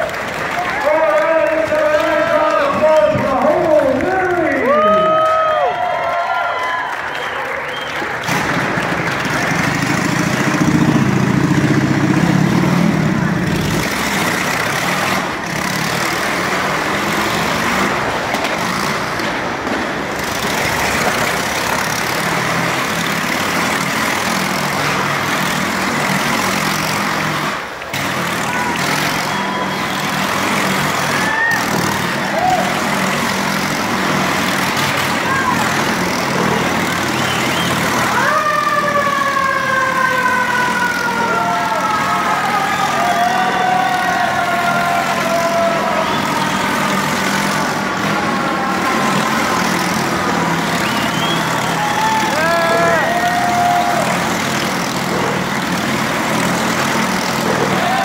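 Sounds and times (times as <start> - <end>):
motorcycle engines running loudly: 0.0 - 6.6, 7.2 - 58.0.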